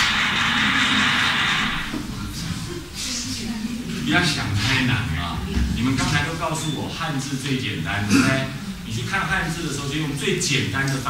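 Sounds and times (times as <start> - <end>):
loud steady hiss: 0.0 - 11.0.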